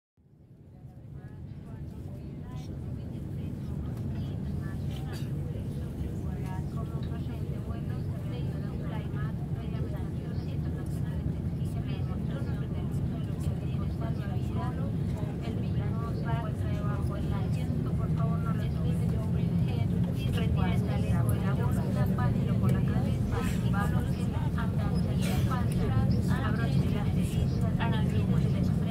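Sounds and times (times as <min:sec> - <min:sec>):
steady low rumble: 0:00.3 - 0:28.9.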